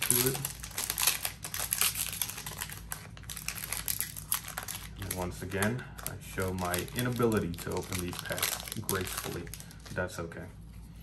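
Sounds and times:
foil wrapper crinkling: 0.0s - 10.2s.

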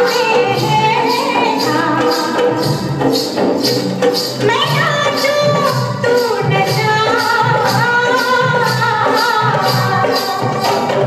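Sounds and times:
jingling percussion: 0.0s - 11.0s
steady drum beat: 0.0s - 11.0s.

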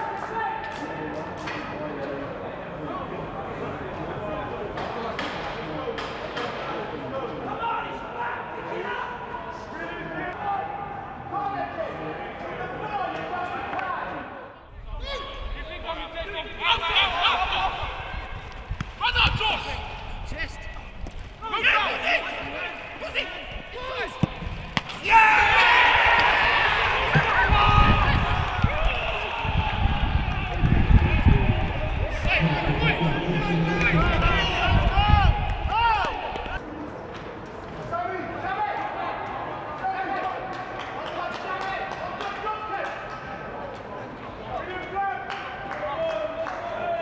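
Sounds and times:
players shouting: 14.8s - 36.6s
football kicked with thud: 24.1s - 25.0s.

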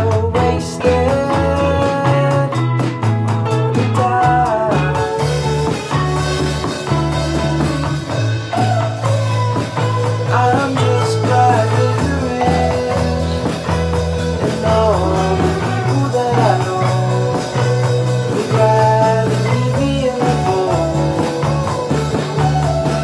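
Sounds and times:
drum kit: 0.0s - 23.0s
electric bass: 0.0s - 23.0s
electric guitar melody: 0.0s - 23.0s
strummed acoustic guitar: 0.0s - 23.0s.

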